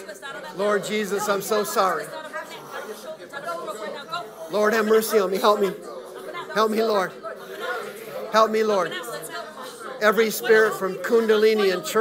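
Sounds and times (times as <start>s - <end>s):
people praying aloud: 0.0s - 12.0s.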